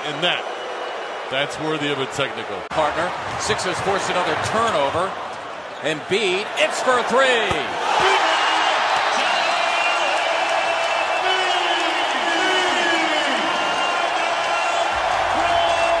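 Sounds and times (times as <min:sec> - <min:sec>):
crowd cheering loudly: 0:00.0 - 0:16.0
shouts and whoops: 0:07.8 - 0:16.0.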